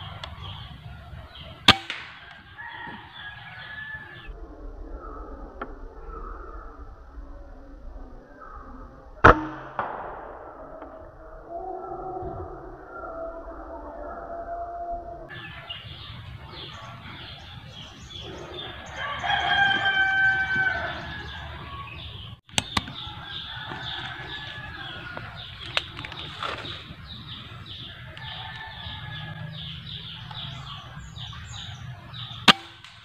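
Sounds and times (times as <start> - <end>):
rooster crowing: 0.0 - 5.2, 11.5 - 22.2, 22.8 - 32.4
air rifle shot crack: 1.6 - 2.6, 9.2 - 11.3, 22.5 - 23.1, 32.4 - 33.0.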